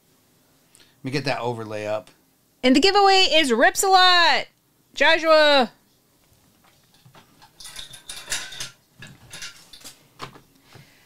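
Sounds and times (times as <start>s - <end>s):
objects clicking and rattling: 6.7s - 10.0s.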